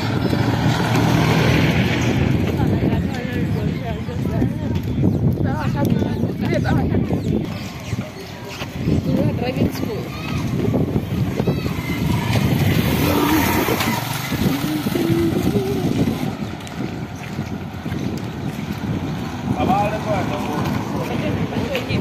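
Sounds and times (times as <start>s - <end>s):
street noise rumble: 0.0s - 22.0s
voices: 0.0s - 22.0s
small motorcycle engine running: 11.2s - 17.3s.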